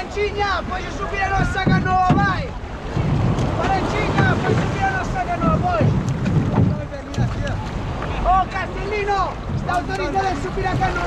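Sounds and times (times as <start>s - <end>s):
water sloshing against canoe hull: 0.0s - 11.0s
wind rumbling on microphone: 0.0s - 11.0s.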